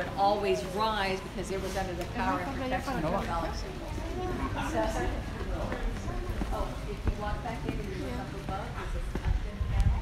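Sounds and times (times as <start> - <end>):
people talking: 0.0 - 10.0
footsteps on paved path: 3.5 - 10.0
low rumble on microphone: 8.8 - 10.0.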